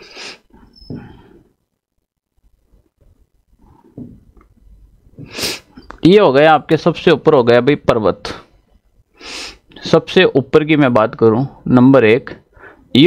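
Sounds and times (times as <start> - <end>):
sharp intake of breath: 0.0 - 1.4, 5.2 - 5.8, 9.1 - 9.7
man sniffing: 0.0 - 1.5, 5.2 - 5.8, 9.2 - 9.7
man breathing: 0.0 - 1.6, 9.1 - 9.7, 12.5 - 12.9.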